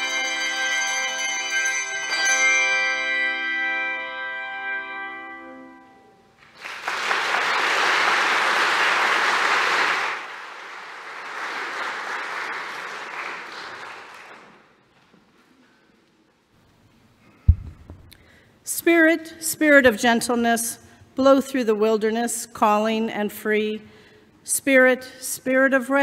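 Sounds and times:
handbell chord ringing: 0.0s - 6.0s
audience applauding: 6.4s - 14.8s.

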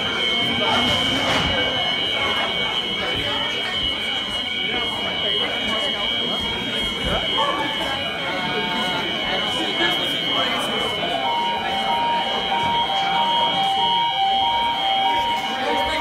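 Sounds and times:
alarm high-pitched tone: 0.0s - 16.0s
crowd talking: 0.0s - 16.0s.

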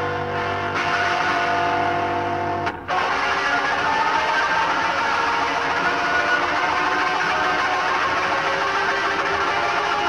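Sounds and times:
blues-rock band playing: 0.0s - 10.0s
electric guitar: 0.0s - 10.0s.

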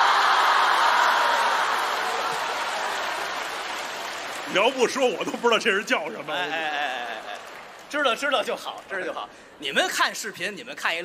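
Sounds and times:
audience applauding: 0.0s - 9.2s
audience laughing: 6.3s - 7.6s.

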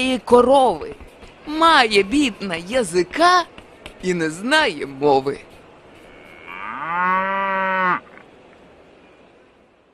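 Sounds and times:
cow mooing: 6.1s - 8.2s.

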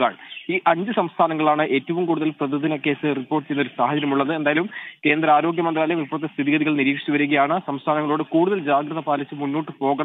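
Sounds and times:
newsreader talking: 0.0s - 10.0s.

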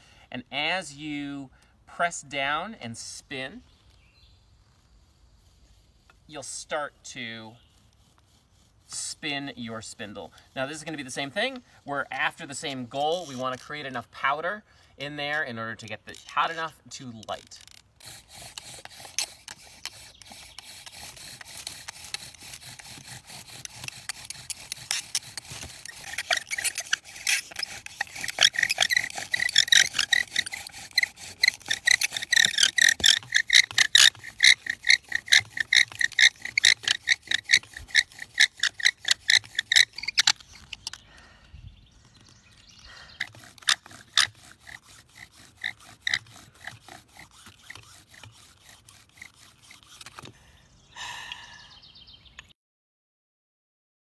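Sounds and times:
bow drill squeaky rasp: 2.3s - 41.2s, 42.0s - 50.4s.

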